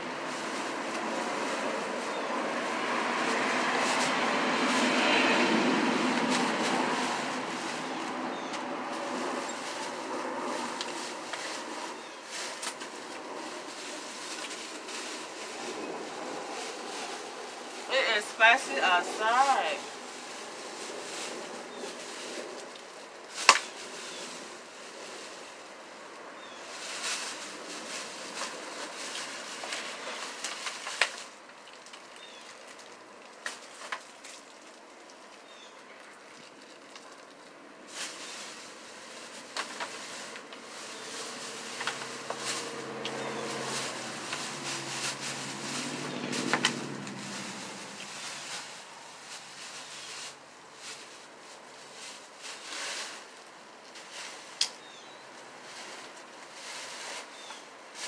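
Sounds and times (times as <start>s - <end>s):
vehicle driving past: 0.0s - 22.6s, 40.1s - 49.7s
plastic bag rustling: 0.0s - 58.0s.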